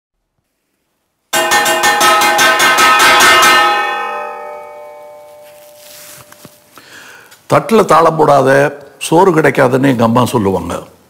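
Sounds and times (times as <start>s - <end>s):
ladle beating on steel plate: 1.4s - 5.5s.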